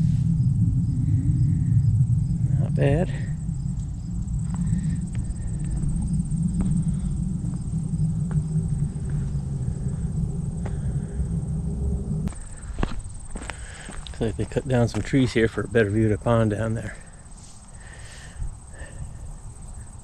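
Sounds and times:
wind buffeting microphone: 0.0 - 20.0
footsteps on rock and dry brush: 4.4 - 7.7, 12.3 - 15.7.

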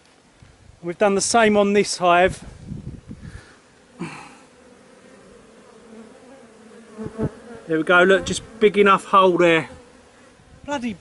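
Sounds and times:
bees buzzing: 2.8 - 11.0.

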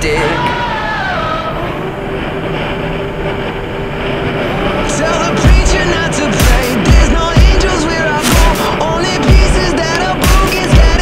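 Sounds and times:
motorcycle engine cruising: 0.0 - 11.0
road and wind noise: 0.0 - 11.0.

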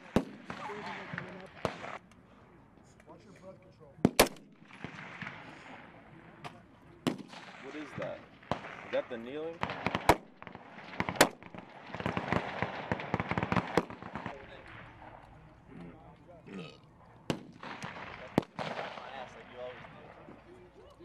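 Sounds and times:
rifle shots cracking: 0.0 - 2.0, 4.1 - 5.8, 7.0 - 15.3, 17.2 - 20.2
voices: 0.5 - 4.0, 10.6 - 21.0.

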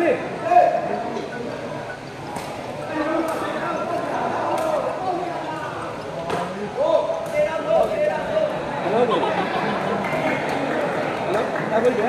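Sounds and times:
people calling out and chattering: 0.0 - 12.0.

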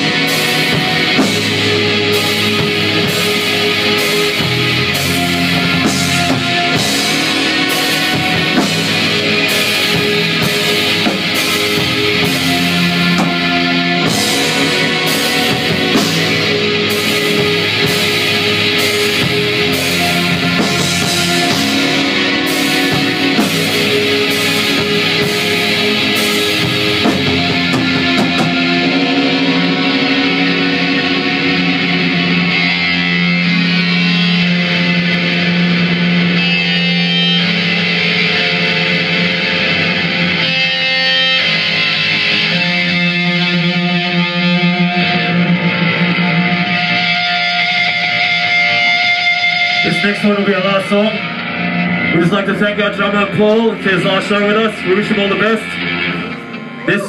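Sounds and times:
drum and cymbal hits: 0.0 - 30.0
distorted electric guitars and bass: 0.0 - 57.0.

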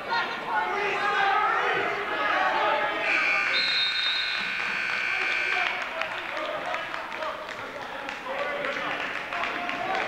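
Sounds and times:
timekeeper's buzzer tone: 3.0 - 5.9.

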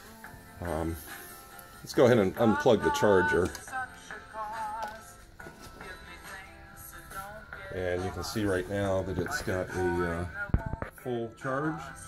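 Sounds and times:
song with singing over loudspeaker: 0.0 - 12.0.

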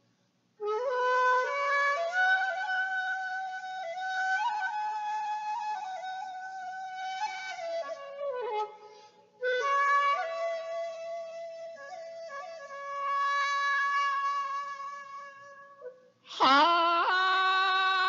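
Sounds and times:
bamboo flute melody: 0.6 - 18.0.

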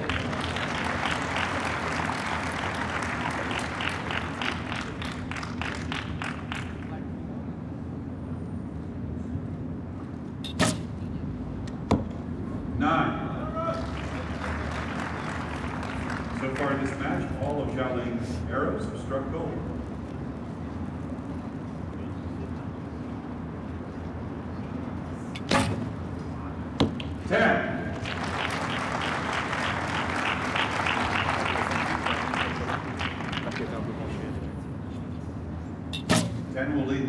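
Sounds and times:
low outdoor rumble: 0.0 - 37.0
bow string snap: 10.5 - 10.9, 36.0 - 36.5.

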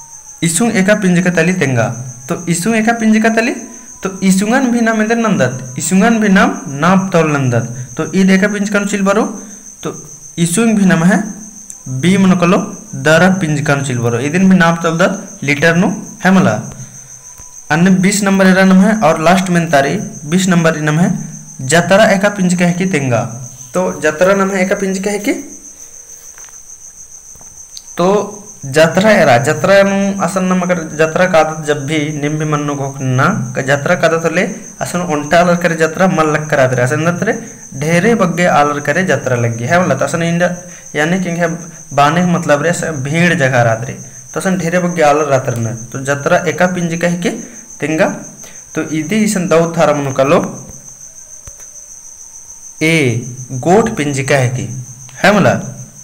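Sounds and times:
crickets trilling: 0.0 - 56.0
man speaking: 0.4 - 16.8, 17.7 - 25.6, 27.9 - 50.7, 52.8 - 55.8.

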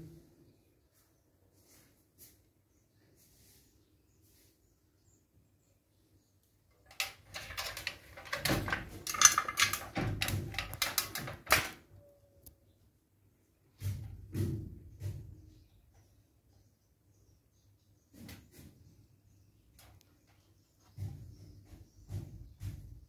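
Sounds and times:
scraping and rustling: 6.8 - 11.8.

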